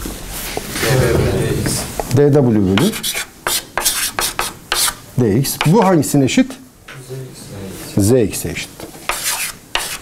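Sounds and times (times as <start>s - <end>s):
chalk scratching on blackboard: 2.8s - 5.9s, 9.1s - 10.0s.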